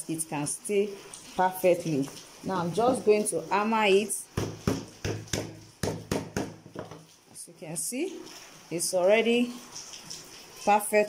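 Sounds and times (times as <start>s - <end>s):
hammer tapping: 4.4s - 7.0s.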